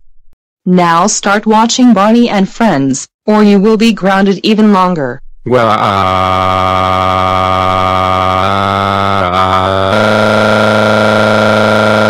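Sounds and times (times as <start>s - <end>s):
synthesized voice drawing out vowel: 5.5s - 12.0s.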